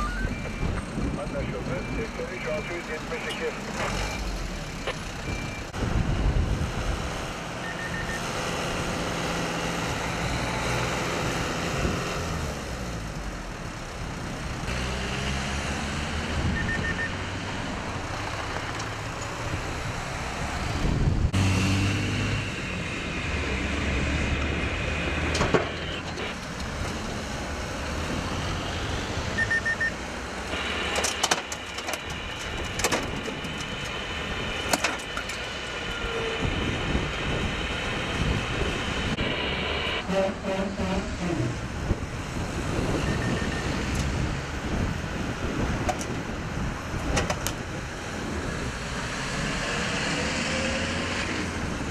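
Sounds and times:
vehicles passing on wet road: 0:05.9 - 0:51.9.

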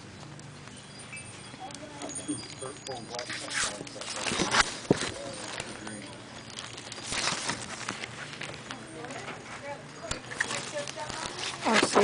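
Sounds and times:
faint voices: 0:01.2 - 0:12.0.

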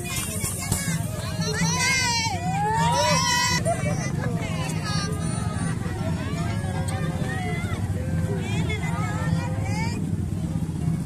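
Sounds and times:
drums beating: 0:00.0 - 0:03.6.

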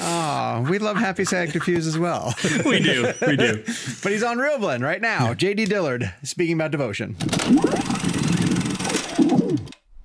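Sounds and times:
rattling mechanical whir: 0:07.4 - 0:09.8.

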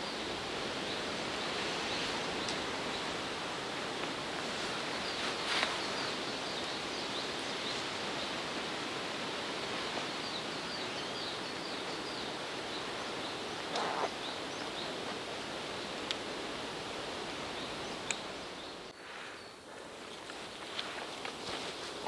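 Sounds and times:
rustle: 0:00.0 - 0:22.0.

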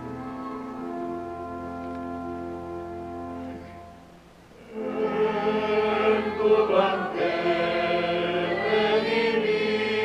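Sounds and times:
steady accompaniment: 0:00.0 - 0:10.0
choir singing a hymn: 0:04.6 - 0:10.0.

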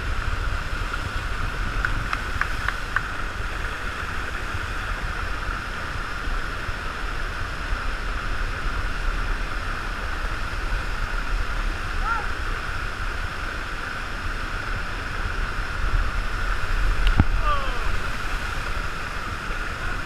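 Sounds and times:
water rushing over wave machine: 0:00.0 - 0:20.0.

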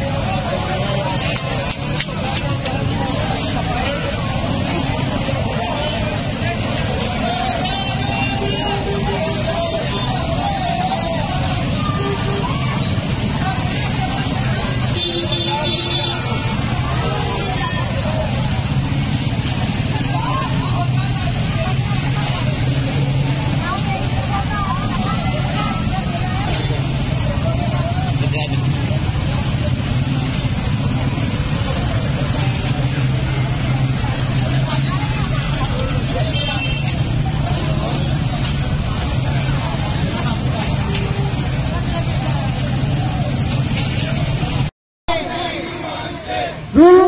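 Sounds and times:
crowd shouting and talking: 0:00.0 - 0:47.0
motorcycle engines droning: 0:44.3 - 0:47.0.

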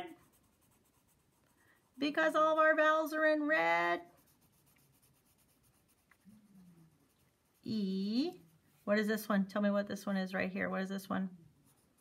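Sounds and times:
pencil scratching on paper: 0:00.0 - 0:09.4, 0:11.5 - 0:12.0.

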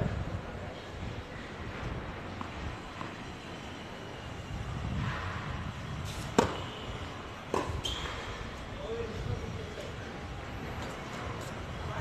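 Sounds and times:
tennis racket hitting ball: 0:06.1 - 0:06.7.

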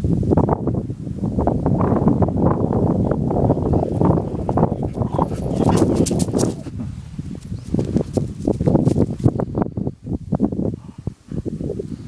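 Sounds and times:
dry grass rustling: 0:03.6 - 0:09.9
dog paws thudding on ground: 0:03.8 - 0:09.4.

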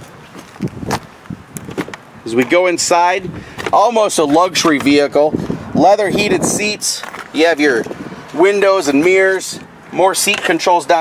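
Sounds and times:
footsteps: 0:00.0 - 0:02.6.

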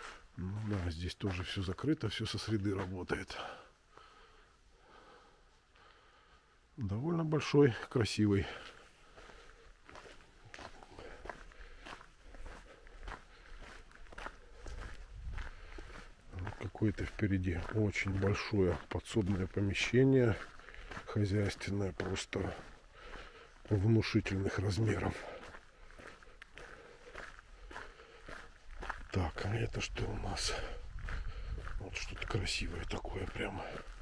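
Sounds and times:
footsteps on gravel: 0:00.0 - 0:04.1, 0:07.4 - 0:34.0.

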